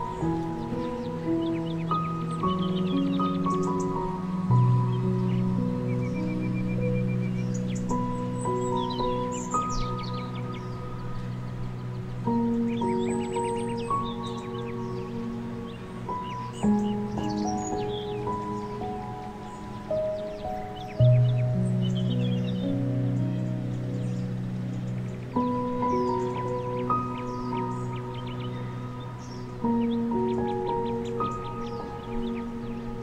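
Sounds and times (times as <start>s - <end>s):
birdsong chirps: 0.0s - 33.0s
calm new-age music: 0.0s - 33.0s.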